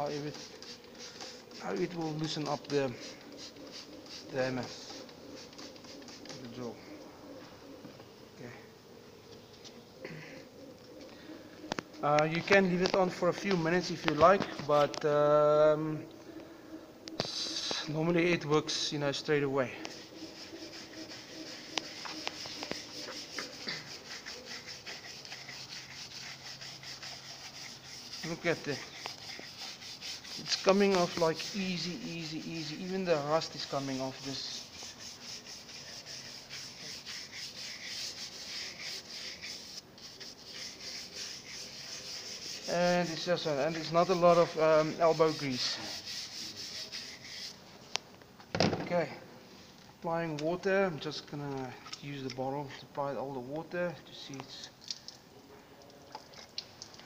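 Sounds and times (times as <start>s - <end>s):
brush scrubbing metal: 0.0s - 6.8s, 12.0s - 15.0s, 17.2s - 47.7s.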